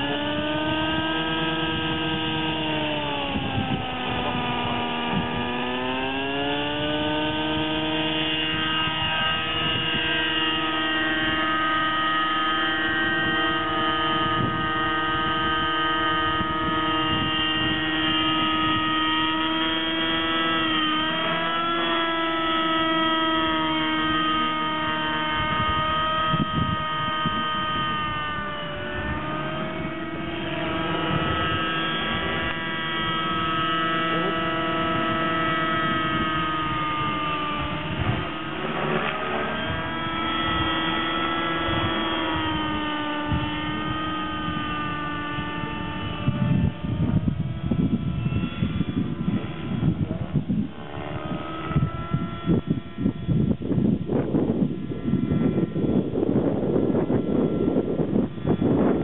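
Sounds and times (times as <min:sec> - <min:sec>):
model helicopter engine whine: 0:00.0 - 0:59.0.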